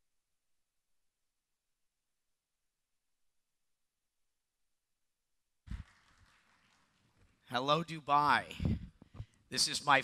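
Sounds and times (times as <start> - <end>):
microphone thump: 8.6 - 9.3.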